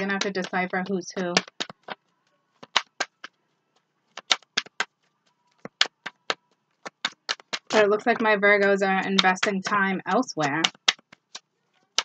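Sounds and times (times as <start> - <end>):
cards clicking on a table: 1.4 - 2.0, 2.6 - 3.3, 4.1 - 4.9, 5.5 - 7.8, 10.6 - 12.0.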